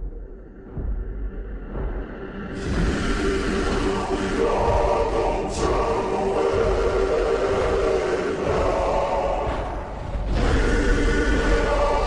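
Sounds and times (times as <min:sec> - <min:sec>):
choir holding long notes: 0:02.5 - 0:12.0.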